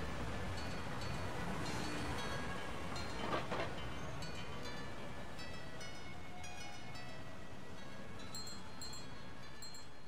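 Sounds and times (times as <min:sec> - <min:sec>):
high chime-like tinkles: 0:03.9 - 0:10.0.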